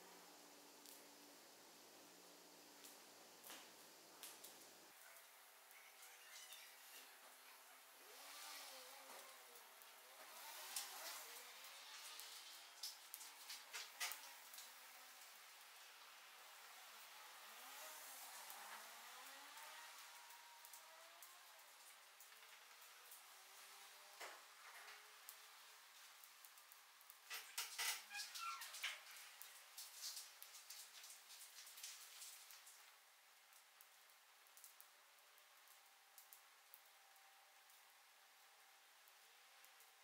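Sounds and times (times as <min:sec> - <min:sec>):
small crackles: 0:00.0 - 0:40.0
soft rush of flames: 0:00.0 - 0:40.0.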